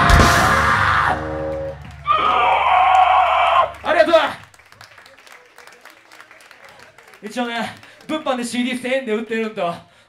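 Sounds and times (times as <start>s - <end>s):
band chord and drum crash: 0.0s - 2.1s
person screaming: 0.4s - 1.3s, 2.1s - 3.8s.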